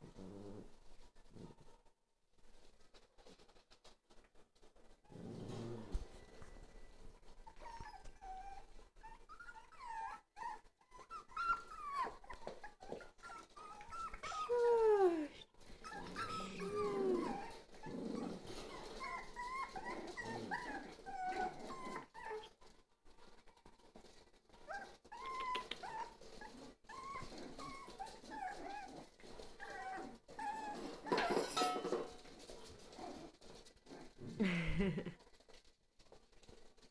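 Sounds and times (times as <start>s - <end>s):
puppies whining and yipping: 6.1s - 22.7s, 24.0s - 34.1s.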